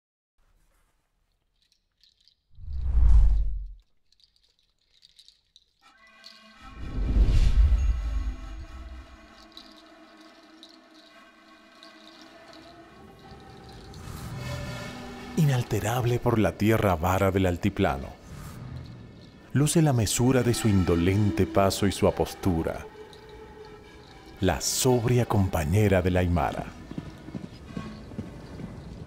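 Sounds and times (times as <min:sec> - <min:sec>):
deep whoosh: 0:02.6 - 0:03.8.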